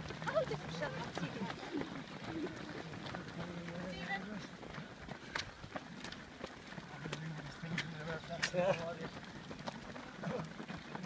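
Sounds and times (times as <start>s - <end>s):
voices in background: 0.0s - 5.3s
running footsteps on gravel: 0.0s - 11.0s.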